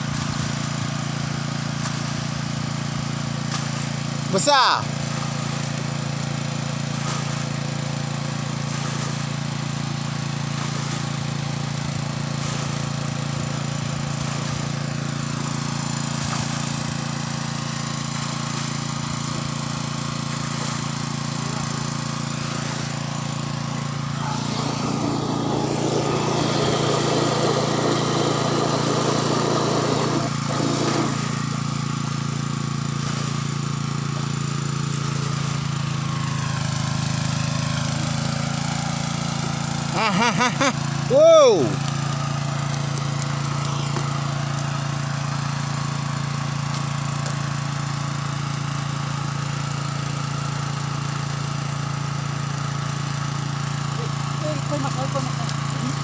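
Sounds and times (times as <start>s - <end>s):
engine-driven water pump droning: 0.0s - 56.0s
water rushing: 14.1s - 31.9s.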